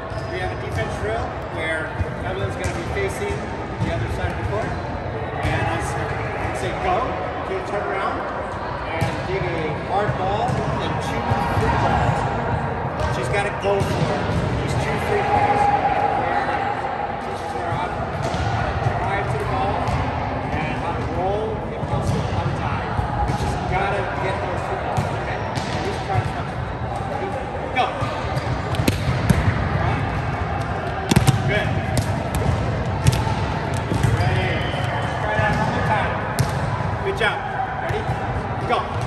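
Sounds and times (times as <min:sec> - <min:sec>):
voices in echoing gym: 0:00.0 - 0:39.0
volleyballs smacking: 0:28.0 - 0:29.6, 0:30.6 - 0:36.8.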